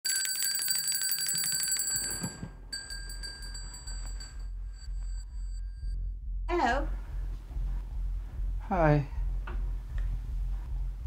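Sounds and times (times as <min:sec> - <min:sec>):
electric bell ringing: 0:00.1 - 0:05.9
low hum: 0:02.7 - 0:11.0.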